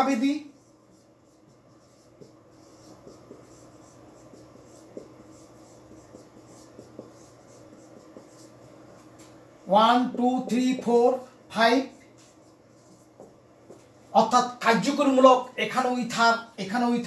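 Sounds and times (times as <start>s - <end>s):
marker squeaking on whiteboard: 0.0s - 9.2s
low room hum: 0.0s - 17.0s.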